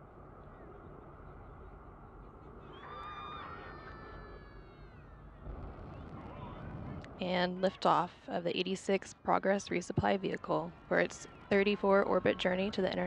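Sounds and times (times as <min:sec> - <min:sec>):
rocket engines rumbling: 0:00.0 - 0:13.0.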